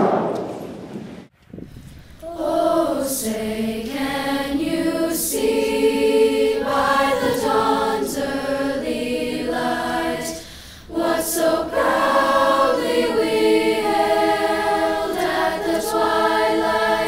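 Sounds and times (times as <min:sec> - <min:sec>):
children singing in unison: 0:02.2 - 0:17.0.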